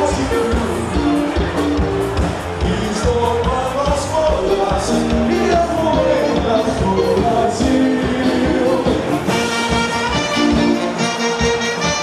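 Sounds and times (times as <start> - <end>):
live band playing: 0.0 - 12.0
saxophone: 8.0 - 12.0
trumpet: 9.2 - 12.0.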